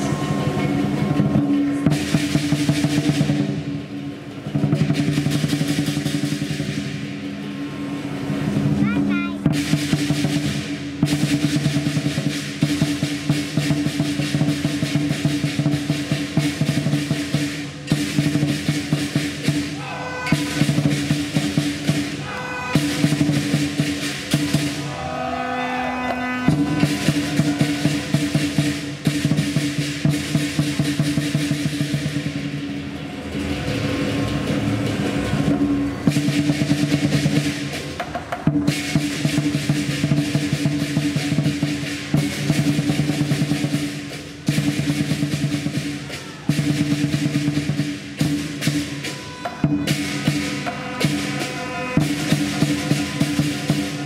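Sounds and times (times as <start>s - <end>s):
ringing gong: 0.0s - 2.6s
clashing cymbals: 0.0s - 54.0s
large drum beating fast: 0.0s - 54.0s.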